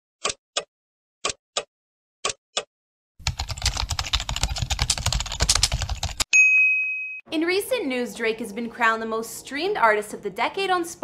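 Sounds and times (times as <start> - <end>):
rapid keyboard typing: 3.2 - 6.3.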